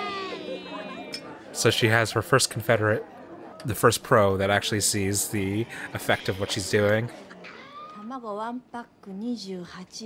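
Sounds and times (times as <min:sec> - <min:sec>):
woman speaking: 0:08.0 - 0:10.0.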